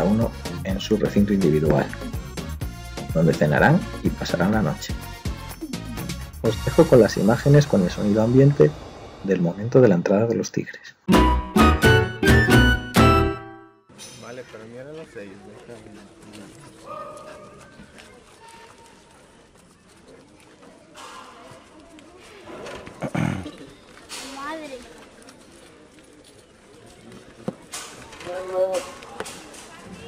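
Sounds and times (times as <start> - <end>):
people talking: 0.0 - 2.0, 3.1 - 4.9, 6.4 - 10.9.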